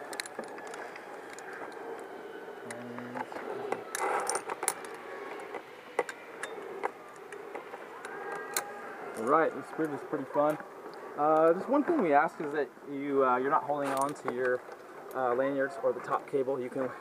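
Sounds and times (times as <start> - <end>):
metal carabiners clinking: 0.0 - 10.6, 13.8 - 15.4.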